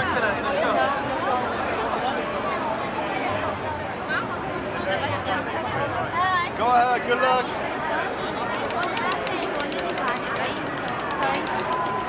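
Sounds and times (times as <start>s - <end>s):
crowd chatter: 0.0s - 12.0s
prize wheel clicking rapidly: 8.5s - 12.0s.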